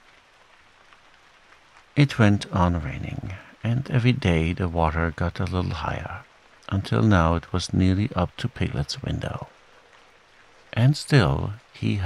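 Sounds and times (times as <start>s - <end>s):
gentle rain falling: 0.0s - 12.0s.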